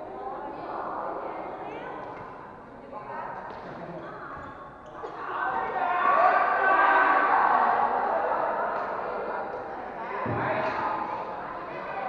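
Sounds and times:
chatter of voices: 0.0s - 12.0s.

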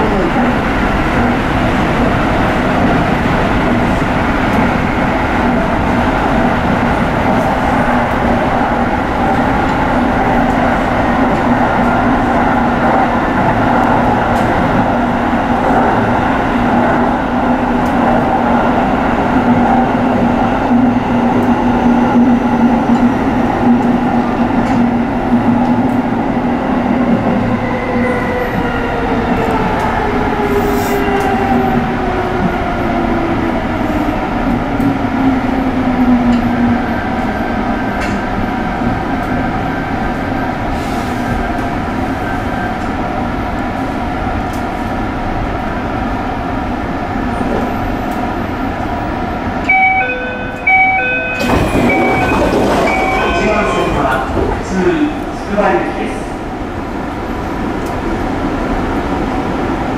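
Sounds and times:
electric train running: 49.7s - 54.7s.

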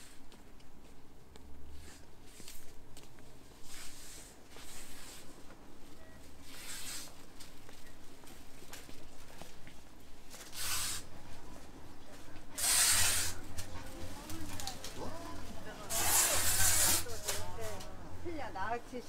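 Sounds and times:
short hissing bursts: 6.6s - 7.2s, 10.5s - 11.1s, 12.6s - 13.4s, 15.9s - 17.1s
shoppers' voices: 10.3s - 19.0s.

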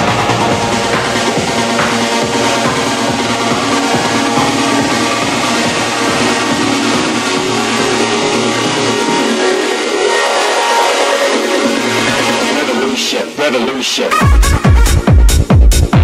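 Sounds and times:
techno music with steady beat: 0.0s - 16.0s.

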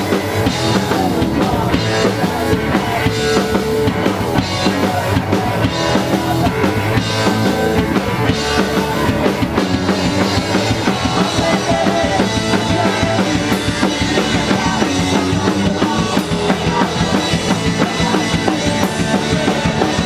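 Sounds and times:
bass guitar: 0.0s - 20.0s
drum kit: 0.0s - 20.0s
electric guitar: 0.0s - 20.0s
guitarist singing: 0.0s - 20.0s.

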